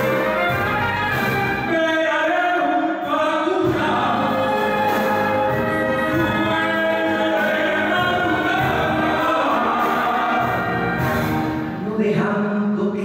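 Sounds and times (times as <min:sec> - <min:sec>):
small orchestra playing: 0:00.0 - 0:12.0
piano: 0:00.0 - 0:13.0
man singing into microphone: 0:01.6 - 0:13.0.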